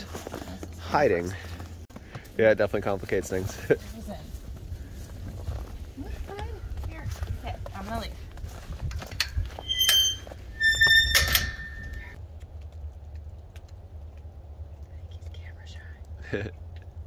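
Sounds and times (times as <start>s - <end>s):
steady low rumble: 0.0s - 10.6s, 11.4s - 17.0s
high-pitched squeaks: 9.5s - 12.2s.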